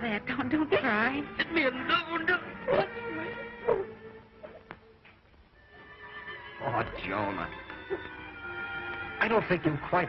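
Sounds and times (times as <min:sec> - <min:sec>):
soft film underscore: 0:00.0 - 0:10.0.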